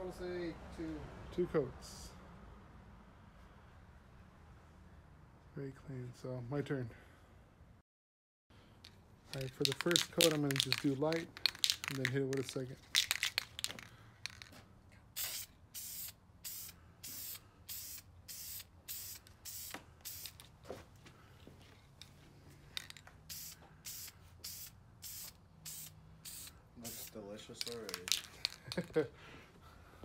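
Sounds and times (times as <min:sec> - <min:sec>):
aerosol spray can hissing: 0:09.4 - 0:14.5, 0:15.2 - 0:20.5, 0:22.8 - 0:28.9.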